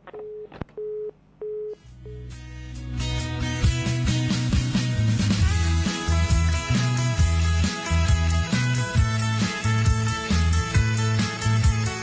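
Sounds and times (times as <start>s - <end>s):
telephone busy tone: 0.1s - 2.2s
guitar music: 2.2s - 12.0s.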